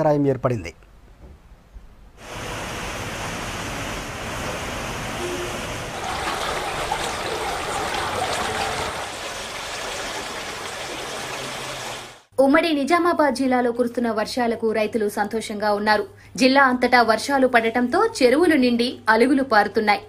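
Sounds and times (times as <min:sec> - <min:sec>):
rushing floodwater: 0:02.2 - 0:12.3.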